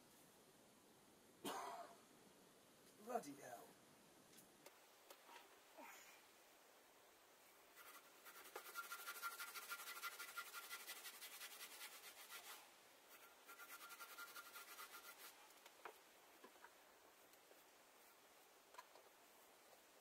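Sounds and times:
scrubbing on a stove top: 7.7s - 15.7s.

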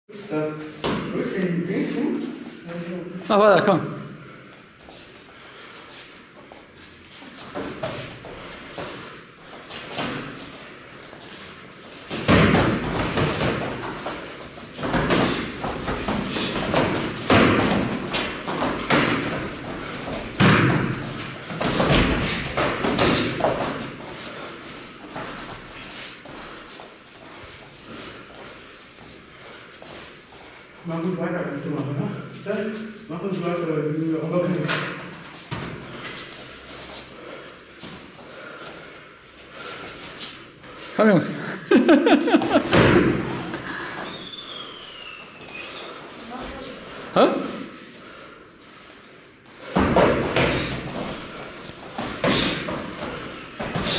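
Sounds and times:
gloved punches and kicks landing: 12.1s - 13.9s, 20.2s - 23.8s.

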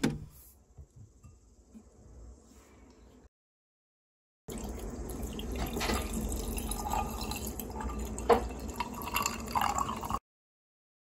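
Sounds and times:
coffee pouring over ice: 4.5s - 10.2s.

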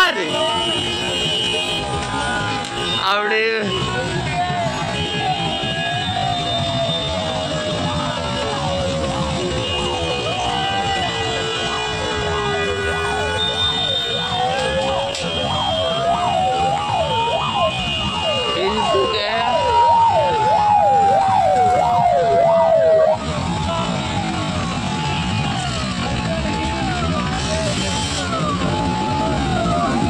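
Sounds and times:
sirens yelping: 1.8s - 30.0s
rising and falling siren tone: 14.4s - 23.6s, 26.5s - 30.0s.

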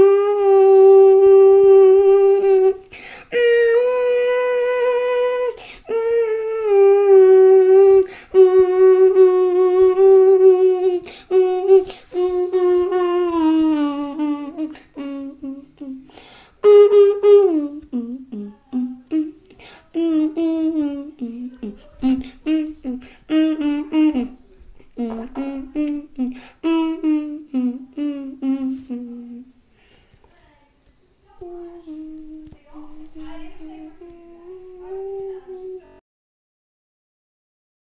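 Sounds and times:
person humming a slow tune: 0.0s - 29.6s, 31.4s - 36.0s.

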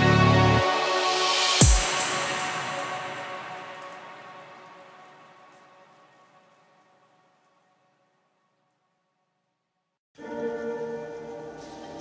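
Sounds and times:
hiss-like noisy wash: 0.7s - 4.8s.

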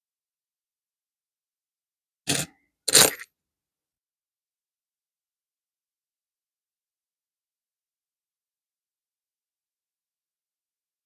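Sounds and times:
coins clattering: 2.3s - 3.3s.

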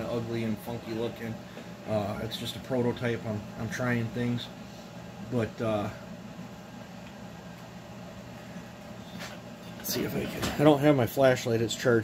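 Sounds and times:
low workshop hum: 0.0s - 12.0s.

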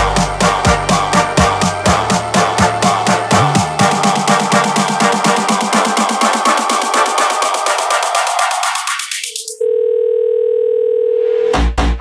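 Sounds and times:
electro house music: 0.0s - 9.6s
telephone dial tone: 9.6s - 11.3s.

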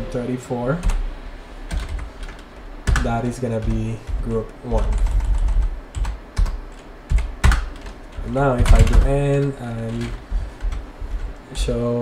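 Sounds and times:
keyboard keystrokes: 4.8s - 11.3s.

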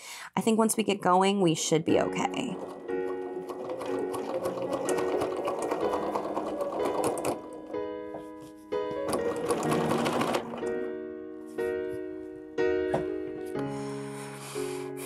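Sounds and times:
piano music: 1.8s - 15.0s
sewing machine stitching: 2.0s - 7.8s, 9.0s - 10.8s.

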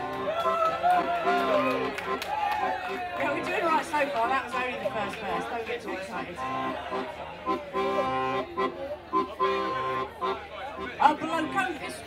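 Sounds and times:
accordion holding chords: 0.0s - 12.0s.

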